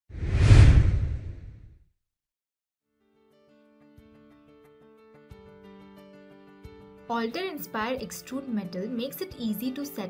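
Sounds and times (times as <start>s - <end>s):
whoosh with low rumble: 0.1s - 1.8s.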